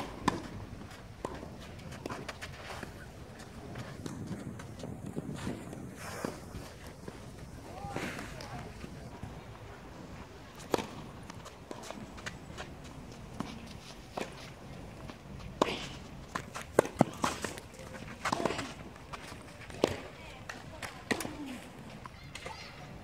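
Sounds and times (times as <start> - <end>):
tennis ball hitting racket: 0.0 - 8.9, 10.5 - 21.5
quick footsteps on clay: 0.0 - 9.3.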